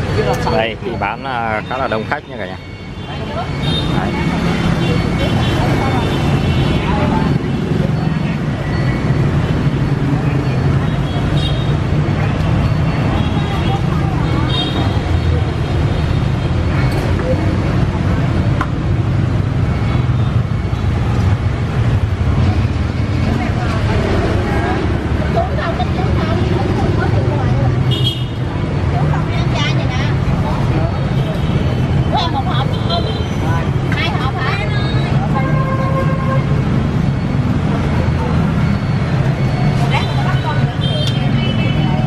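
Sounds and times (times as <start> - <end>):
people talking: 0.0 - 8.8, 12.1 - 15.7, 23.2 - 42.0
street traffic rumble: 0.0 - 42.0.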